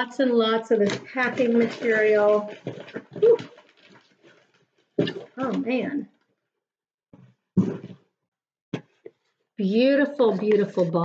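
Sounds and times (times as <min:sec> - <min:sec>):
packing material rustling in box: 0:01.1 - 0:05.6.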